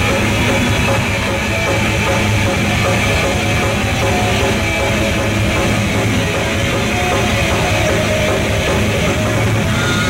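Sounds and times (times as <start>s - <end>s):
bass guitar: 0.0s - 10.0s
distorted electric guitars: 0.0s - 10.0s
drums: 0.0s - 10.0s.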